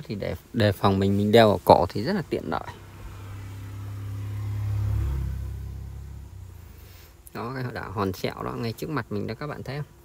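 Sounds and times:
speedboat engine humming: 2.0 - 7.1.

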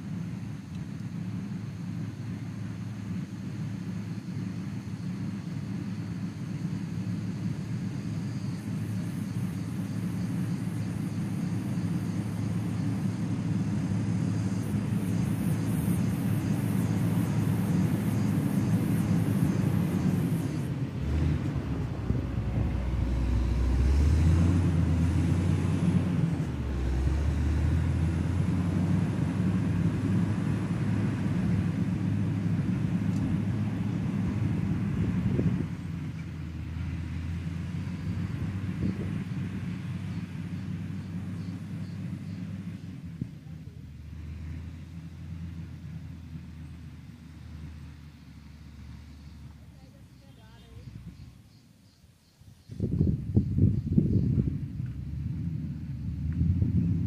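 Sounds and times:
diesel engine under load: 0.0 - 51.6, 52.6 - 57.0.

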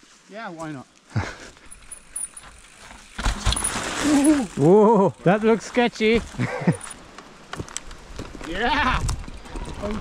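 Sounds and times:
mountain bike rolling on dirt: 0.0 - 10.0.

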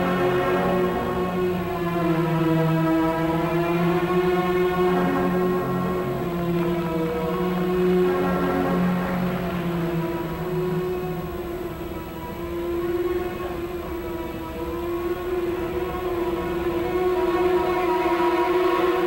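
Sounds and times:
instrumental music with long notes: 0.0 - 19.0.

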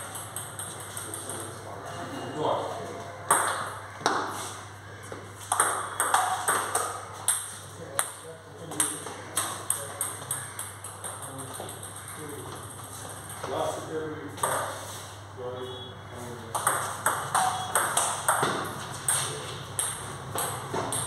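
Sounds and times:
table tennis balls clicking: 0.0 - 1.6, 5.4 - 13.4, 16.5 - 21.0.

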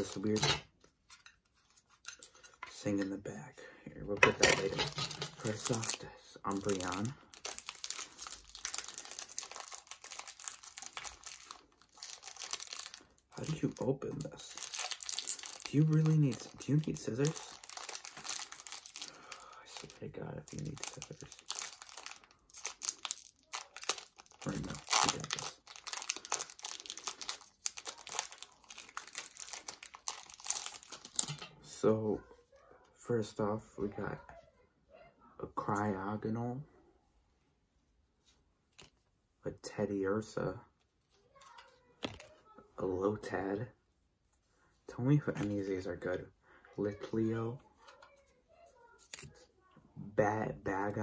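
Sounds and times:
foil wrapper crinkling: 4.6 - 31.5.

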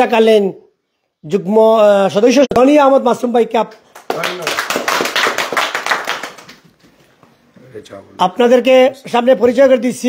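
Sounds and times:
people applauding: 3.9 - 6.8.

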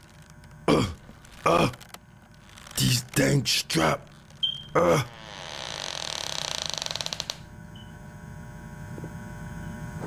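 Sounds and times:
wooden chair and straps creaking: 0.0 - 7.5
faint hum: 0.0 - 10.0.

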